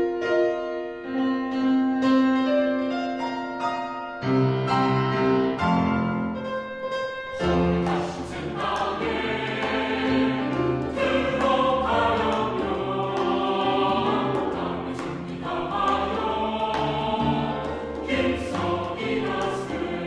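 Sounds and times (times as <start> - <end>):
instrumental accompaniment: 0.0 - 20.0
church choir singing: 7.3 - 20.0.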